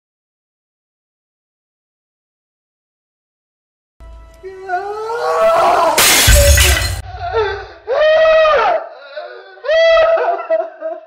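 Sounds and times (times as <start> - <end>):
painting smashing with a crash: 6.0 - 7.2.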